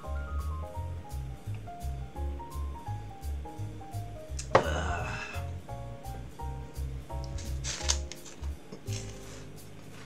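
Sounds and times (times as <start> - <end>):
background music with bass line: 0.0 - 10.0
plastic wrapper rustle and crunch: 7.4 - 10.0.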